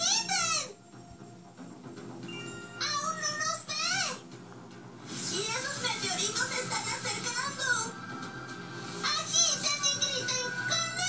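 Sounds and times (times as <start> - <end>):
soft cartoon background music: 0.0 - 11.0.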